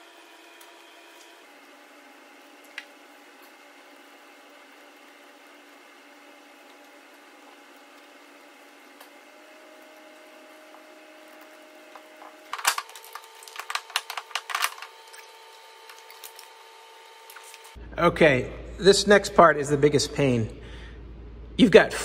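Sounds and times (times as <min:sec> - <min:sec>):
metal tools clattering: 0:12.5 - 0:15.3.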